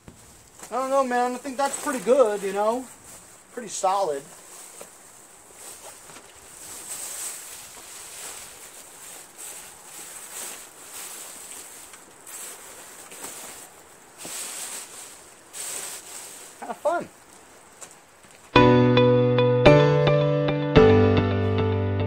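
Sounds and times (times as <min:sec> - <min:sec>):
packing paper crinkling: 0:00.0 - 0:18.5
plastic bag rustling: 0:00.0 - 0:18.5.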